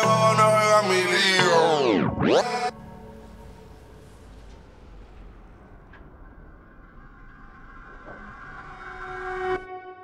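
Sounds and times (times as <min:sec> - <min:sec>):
rumble: 0:02.8 - 0:09.4.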